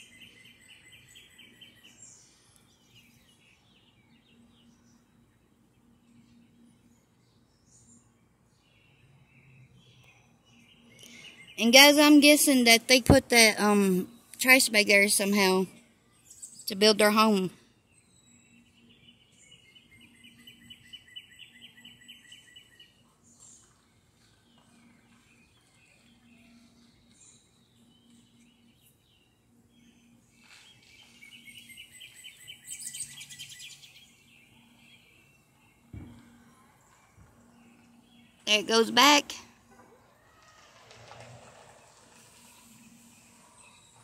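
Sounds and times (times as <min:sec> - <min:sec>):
songbird trilling: 0:31.0 - 0:35.0.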